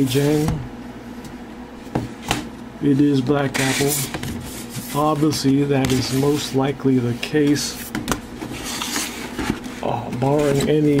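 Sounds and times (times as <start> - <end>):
cardboard lid scraping: 8.4 - 11.0.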